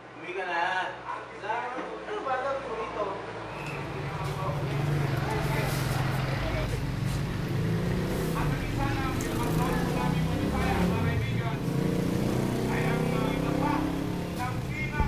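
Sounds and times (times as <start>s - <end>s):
street traffic drone: 1.9s - 15.0s
man talking: 3.8s - 6.8s, 8.2s - 11.8s, 12.5s - 15.0s.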